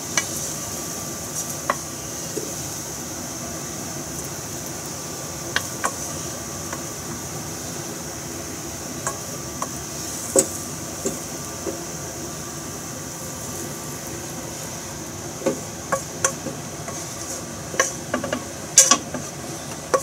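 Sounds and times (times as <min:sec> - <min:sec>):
steady background hiss: 0:00.0 - 0:20.0
wooden spatula scraping pan: 0:15.5 - 0:19.4.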